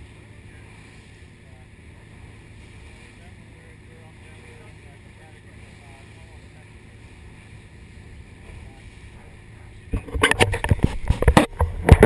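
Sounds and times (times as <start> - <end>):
small boat engine rumble: 0.0 - 12.0
water noise: 0.0 - 12.0.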